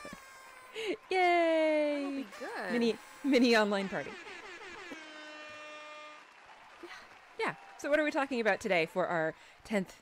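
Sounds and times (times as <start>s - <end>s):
party horn buzzing: 2.1s - 6.5s.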